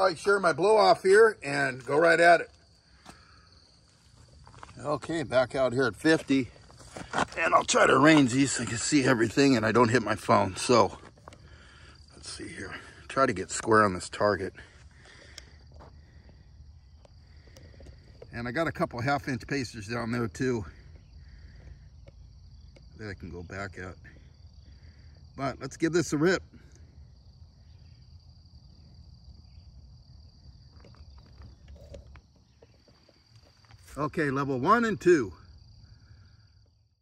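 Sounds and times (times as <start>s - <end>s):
insects chirring: 0.0s - 37.0s.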